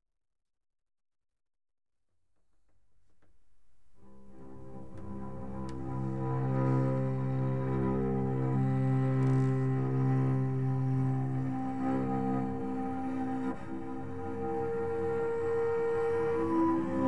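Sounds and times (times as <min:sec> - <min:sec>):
bowed cello notes: 0:04.0 - 0:17.0.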